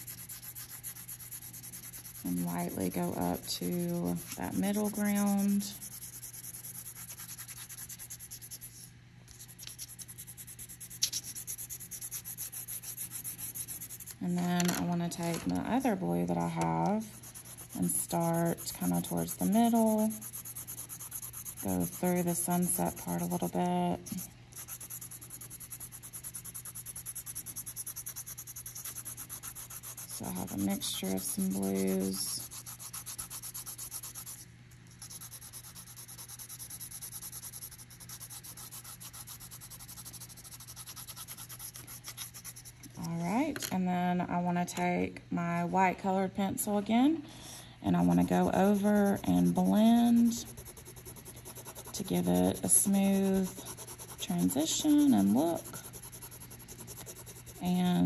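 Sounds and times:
pencil shading on paper: 0.0s - 8.8s, 9.4s - 14.2s, 16.3s - 34.4s, 35.0s - 42.7s, 47.9s - 58.0s.

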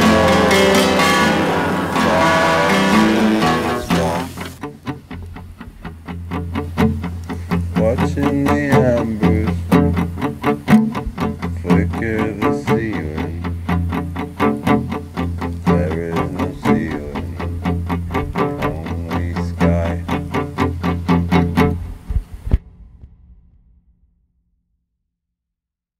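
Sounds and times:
picked guitar notes: 0.0s - 22.1s.

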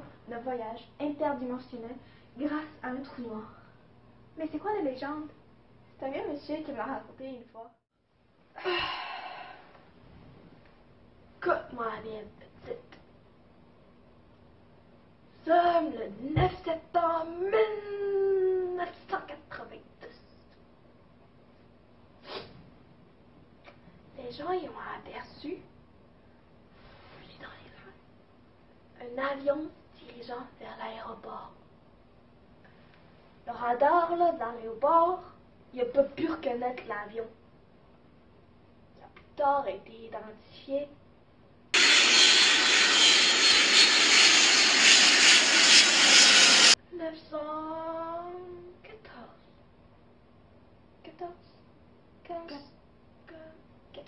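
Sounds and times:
girl speaking: 0.3s - 3.6s, 4.4s - 5.4s, 6.0s - 7.7s, 11.4s - 13.0s, 15.4s - 20.3s, 24.2s - 25.7s, 29.0s - 31.6s, 33.5s - 37.4s, 39.0s - 41.0s, 46.9s - 49.4s, 51.0s - 51.4s, 52.2s - 54.0s
airplane engine noise: 41.8s - 46.8s.

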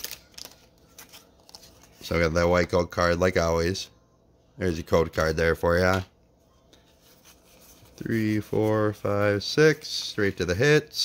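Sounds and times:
cards shuffling and scraping: 0.0s - 2.2s, 6.7s - 10.6s.

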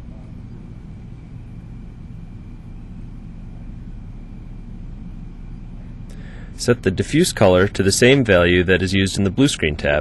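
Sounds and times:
low hum with light hiss: 0.0s - 10.0s.

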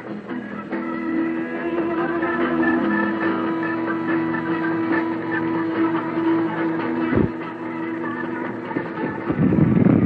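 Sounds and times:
rock band sustained drone: 0.0s - 10.0s.

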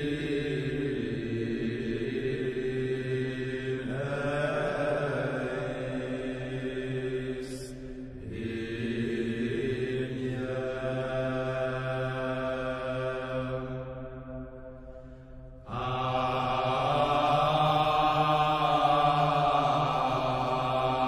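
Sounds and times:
slow chanting voices: 0.0s - 21.0s.

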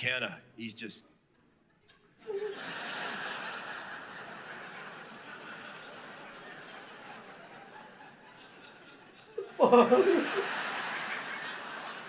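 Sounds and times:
audience laughing: 2.2s - 12.0s.

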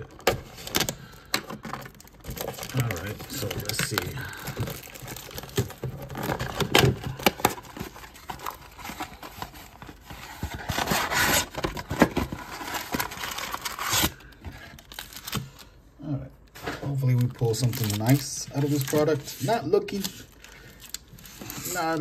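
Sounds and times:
cardboard and wrappers rustling: 0.0s - 15.8s, 16.4s - 22.0s.

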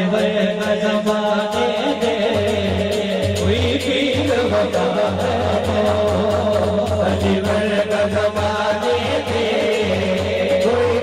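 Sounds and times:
man singing into microphone: 0.0s - 11.0s.

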